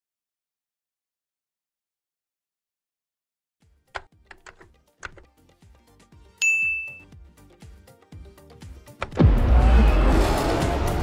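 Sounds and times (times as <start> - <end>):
laptop keystrokes: 4.0 - 5.3
chat message ding: 6.4 - 7.0.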